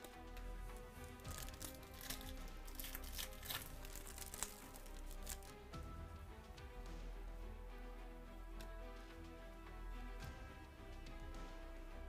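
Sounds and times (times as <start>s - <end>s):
trading cards shuffling: 0.0s - 5.6s
quiet background music: 0.0s - 12.0s.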